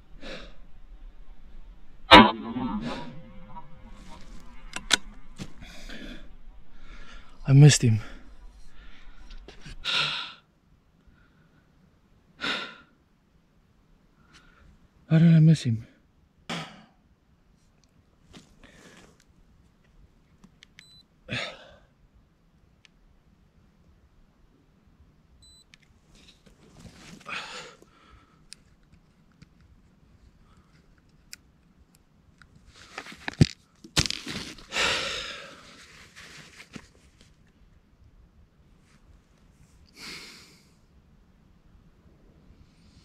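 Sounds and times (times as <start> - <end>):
man breathing: 0.0 - 2.0, 2.8 - 10.4, 34.6 - 35.9
rifle shot echo: 2.1 - 3.7
short breath: 5.5 - 10.4.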